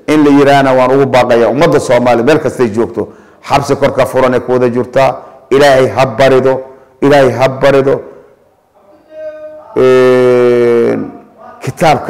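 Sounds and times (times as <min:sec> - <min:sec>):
man holding long vowel: 0:08.8 - 0:11.4.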